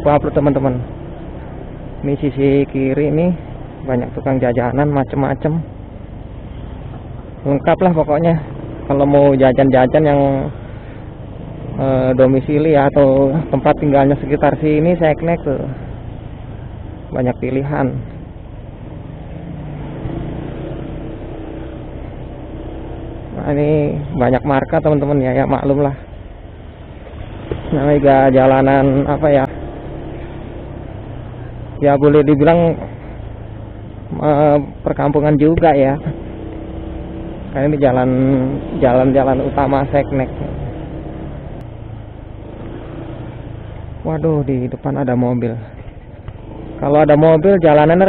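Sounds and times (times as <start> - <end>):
motorcycle engine running: 0.0 - 48.0
road and wind noise: 0.0 - 48.0.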